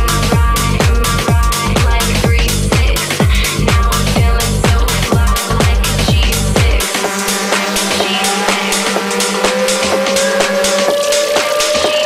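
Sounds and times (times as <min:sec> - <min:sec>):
synth tone rising in pitch: 0:05.3 - 0:12.0.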